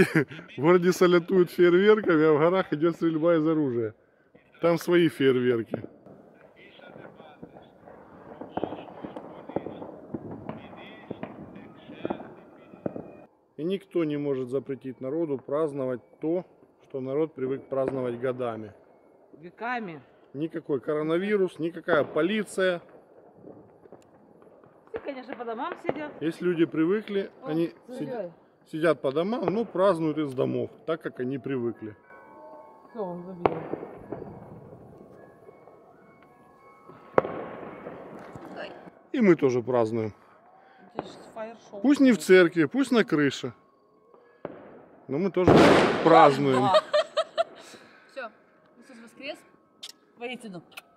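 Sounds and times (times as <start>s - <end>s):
distant fireworks and gunshots: 0.8s - 2.7s, 4.3s - 13.4s, 15.3s - 19.4s, 20.9s - 49.8s
loud firework bang with echo: 5.7s - 13.3s, 33.4s - 35.6s, 36.9s - 38.9s, 44.4s - 46.8s.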